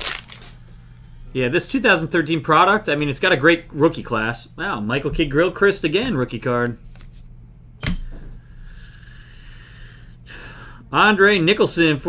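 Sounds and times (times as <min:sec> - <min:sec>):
faint steady hum: 0:00.0 - 0:12.0
trading card snap: 0:07.8 - 0:08.1.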